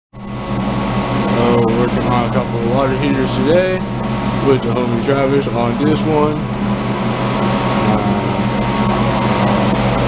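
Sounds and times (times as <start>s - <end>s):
machine hum with high whine: 0.2s - 10.0s
man talking: 1.3s - 6.5s.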